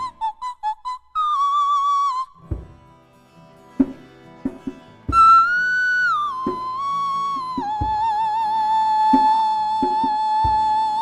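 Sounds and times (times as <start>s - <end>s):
djembe hand strikes: 3.8s - 5.4s
high wordless singing: 5.2s - 11.0s.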